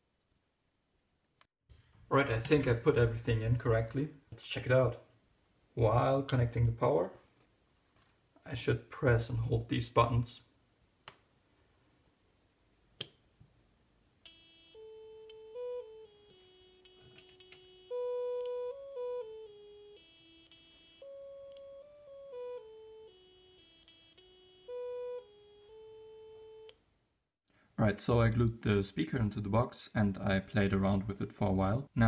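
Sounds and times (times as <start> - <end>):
buzzy electronic synth melody: 14.3 - 26.7.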